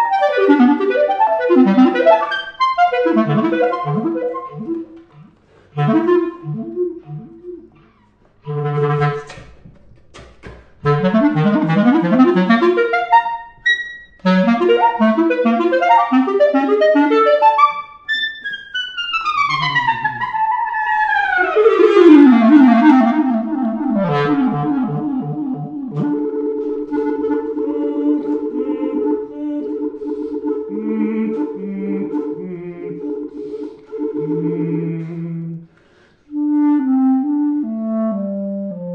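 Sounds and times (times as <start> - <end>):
solo clarinet: 0.0 - 9.5, 10.8 - 38.9.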